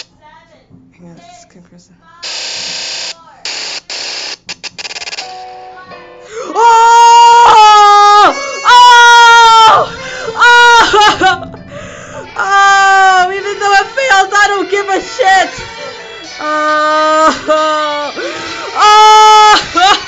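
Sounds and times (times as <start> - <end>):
man wailing: 6.4 - 11.6, 12.2 - 20.0.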